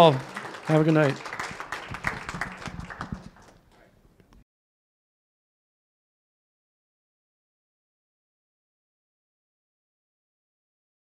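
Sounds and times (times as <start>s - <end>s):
applause: 0.0s - 3.8s.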